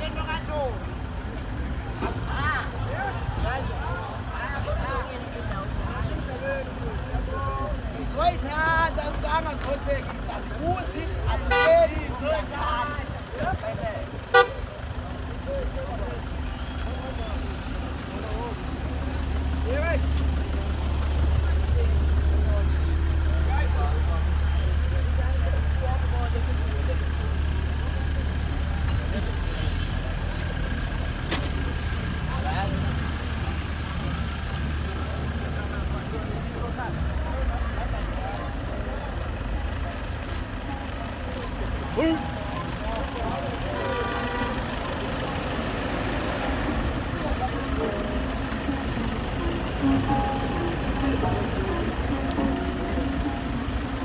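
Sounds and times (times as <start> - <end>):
people's voices: 0.0 - 54.0
vehicle engine idling: 0.0 - 54.0.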